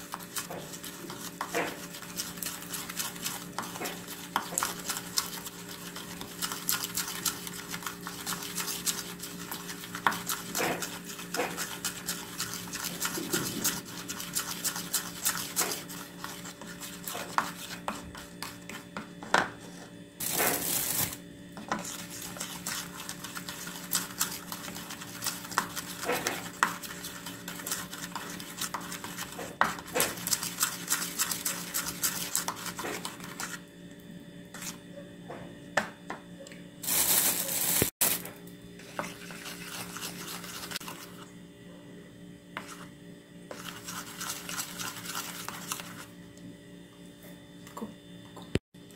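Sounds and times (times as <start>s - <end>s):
spoon stirring and scraping in bowl: 0.0s - 33.6s, 34.5s - 34.8s, 37.2s - 41.4s, 42.5s - 42.9s, 43.5s - 46.2s.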